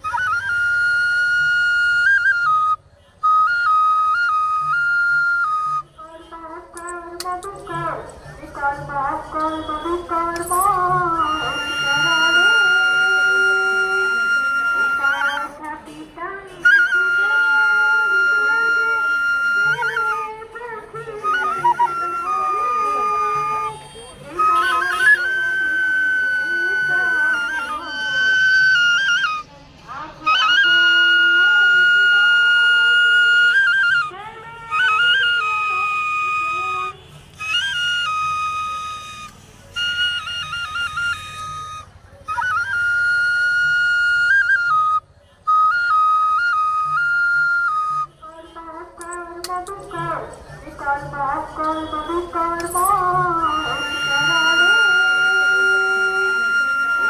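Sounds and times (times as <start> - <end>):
bamboo flute melody: 0.0 - 57.0.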